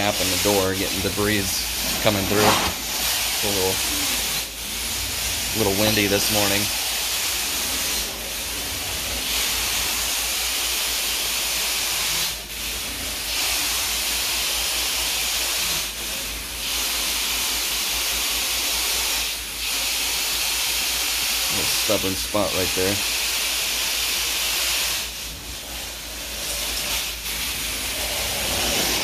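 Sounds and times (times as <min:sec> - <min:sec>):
hiss of suction and spray: 0:00.0 - 0:29.0.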